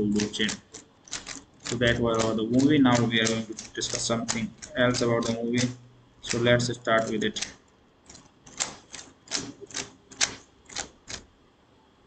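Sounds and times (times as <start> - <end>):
keyboard keys tapping: 0.0 - 11.2.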